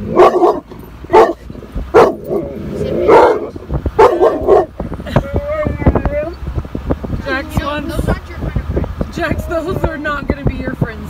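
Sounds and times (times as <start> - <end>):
dog barking: 0.1 - 2.4, 3.0 - 4.7.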